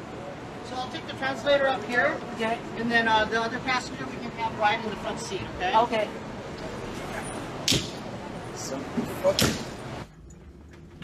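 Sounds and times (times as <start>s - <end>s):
ambulance interior background noise: 0.0s - 11.0s.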